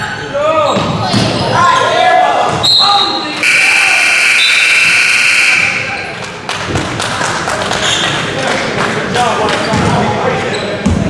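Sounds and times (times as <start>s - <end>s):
murmur of voices: 0.0s - 11.0s
scoreboard buzzer tone: 3.4s - 5.9s.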